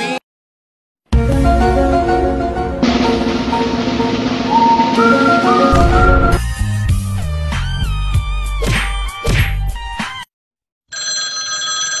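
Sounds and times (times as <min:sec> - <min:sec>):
background music: 0:01.1 - 0:08.9
electronic bell ringing: 0:10.9 - 0:12.0.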